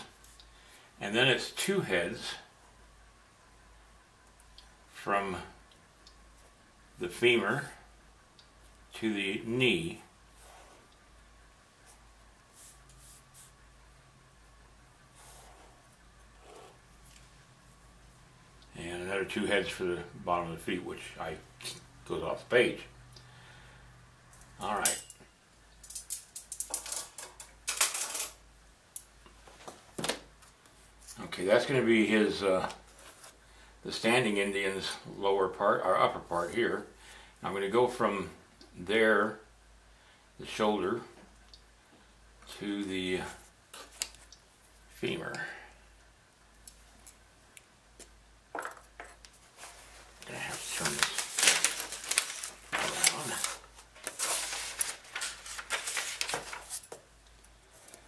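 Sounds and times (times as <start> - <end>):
pliers clattering: 25.8 - 28.4
wire and pliers clicking and rattling: 25.8 - 28.4
paper pages rustling: 49.3 - 57.0.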